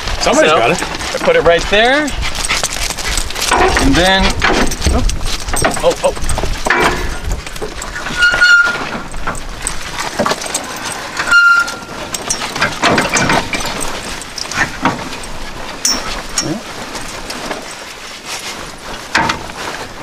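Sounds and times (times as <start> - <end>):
metal clanking and scraping: 0.2 - 20.0
ringing metallic squeals: 7.0 - 16.6.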